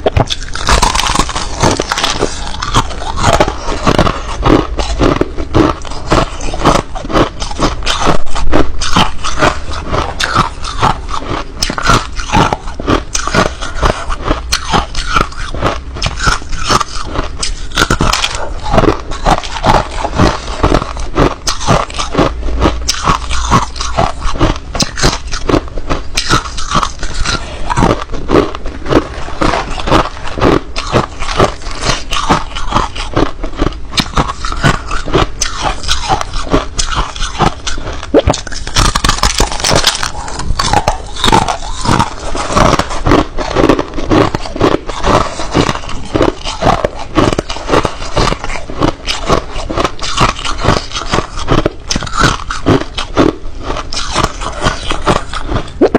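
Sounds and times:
ice being chewed: 0.0 - 55.9.

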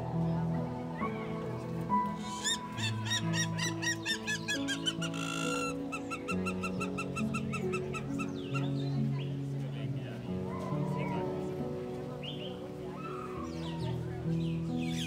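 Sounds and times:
slow piano music: 0.0 - 15.0
bird calling in arching notes: 2.2 - 8.9.

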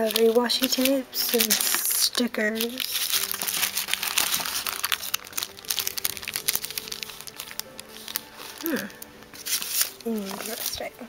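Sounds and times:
paper sleeve crinkling: 0.0 - 11.0
quiet background music: 0.0 - 11.0.

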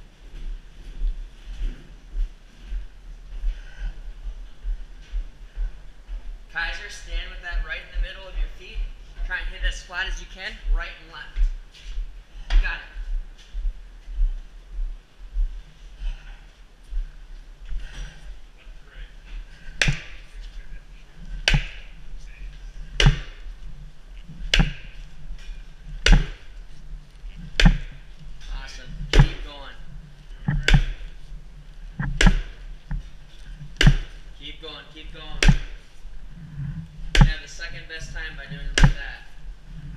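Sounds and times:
sledgehammer striking steel beam: 23.0 - 23.4.

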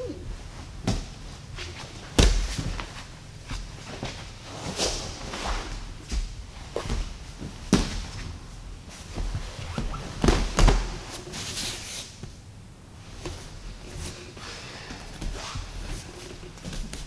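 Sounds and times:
bodies thudding on mats: 0.4 - 12.3.

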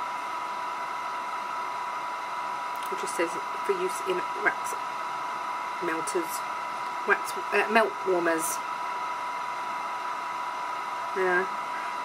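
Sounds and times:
constant high hum: 0.0 - 12.0
fan-driven machine whirring: 0.0 - 12.0.

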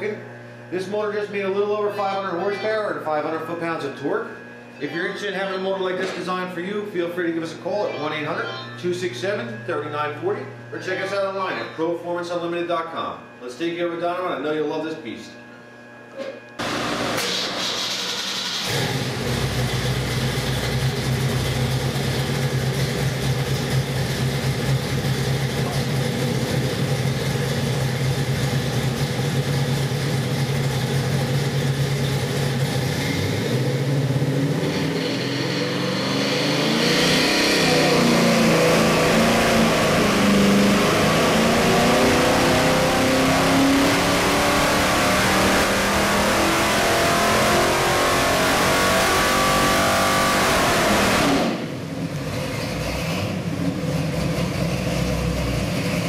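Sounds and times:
engine revving on dynamometer: 16.6 - 56.0.

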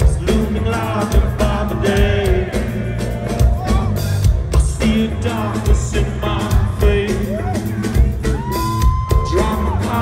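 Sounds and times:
live rock band playing: 0.0 - 10.0.

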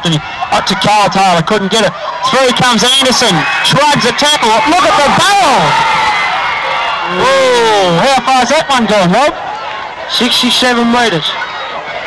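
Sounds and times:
football crowd noise: 0.0 - 12.0
long falling vocal shout: 7.0 - 8.0.

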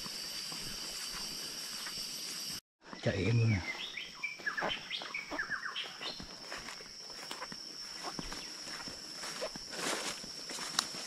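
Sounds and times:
footsteps brushing undergrowth: 0.0 - 2.6, 3.7 - 11.0
forest birds chirping: 0.0 - 11.0
high-pitched insect drone: 0.0 - 11.0.

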